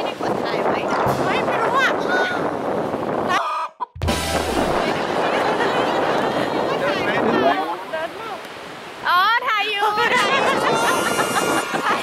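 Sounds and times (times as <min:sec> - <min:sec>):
wind noise on microphone: 0:00.0 - 0:09.1, 0:09.8 - 0:12.0.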